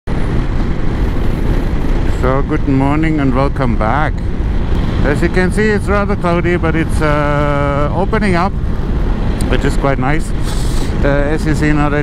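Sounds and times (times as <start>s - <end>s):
motorcycle road noise: 0.0s - 12.0s
wind rush: 0.1s - 12.0s.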